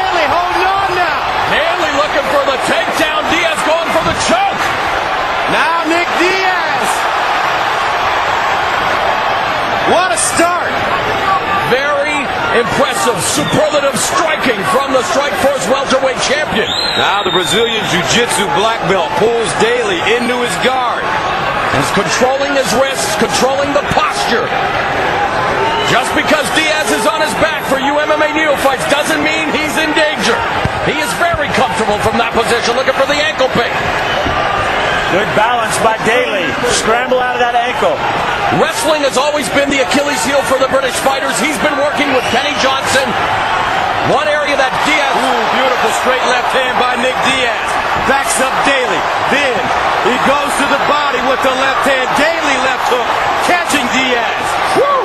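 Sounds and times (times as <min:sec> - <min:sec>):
commentator speaking: 0:00.0 - 0:04.8, 0:05.4 - 0:07.1, 0:09.8 - 0:21.1, 0:21.7 - 0:24.6, 0:25.9 - 0:33.8, 0:35.1 - 0:43.2, 0:44.0 - 0:55.0
arena crowd cheering: 0:00.0 - 0:55.0.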